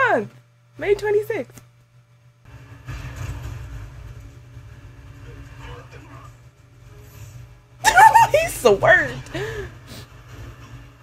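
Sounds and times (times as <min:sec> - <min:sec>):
fire rumble with hiss: 0:02.5 - 0:07.6.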